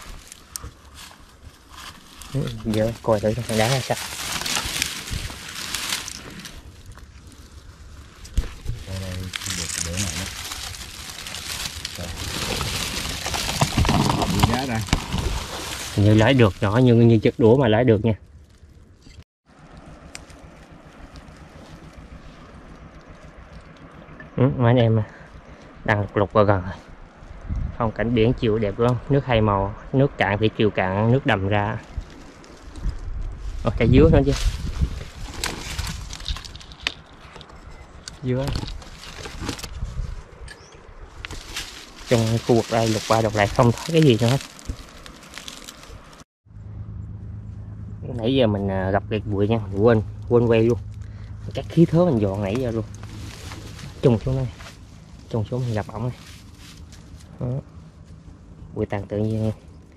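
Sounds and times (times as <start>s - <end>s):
dry leaves rustling and crackling: 0.0s - 24.0s, 31.6s - 48.0s, 49.1s - 59.9s
twig snapping: 8.2s - 16.0s, 18.5s - 22.0s, 41.2s - 46.2s.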